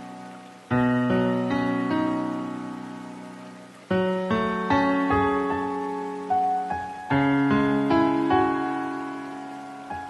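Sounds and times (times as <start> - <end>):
slow soft piano music: 0.0 - 10.0.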